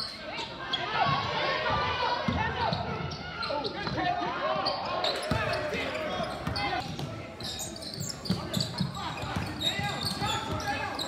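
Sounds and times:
voices in a gym: 0.0 - 11.0
sneaker squeaks: 2.6 - 11.0.

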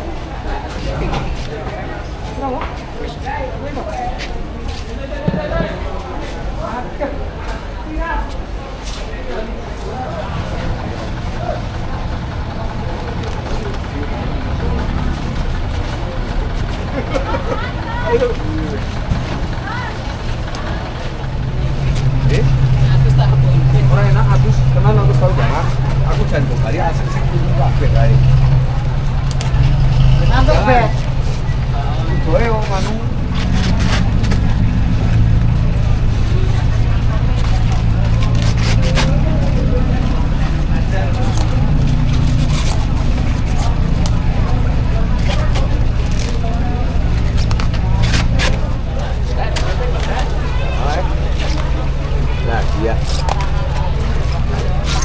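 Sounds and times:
vehicle engine humming: 0.0 - 55.0
voices in a market: 0.0 - 55.0.

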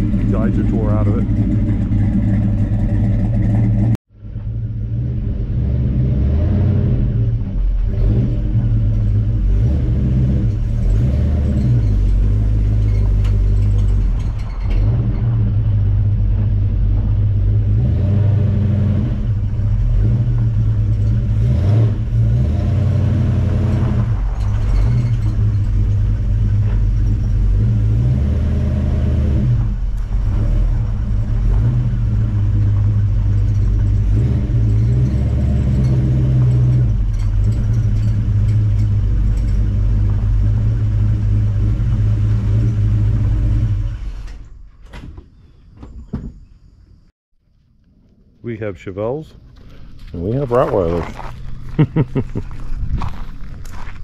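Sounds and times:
car engine deep rumble: 0.0 - 44.8, 47.8 - 54.0.

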